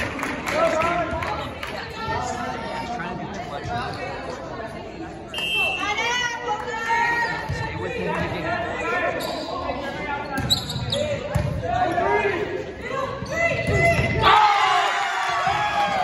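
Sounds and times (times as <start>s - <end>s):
sneakers squeaking: 6.9s - 12.0s, 12.9s - 14.3s.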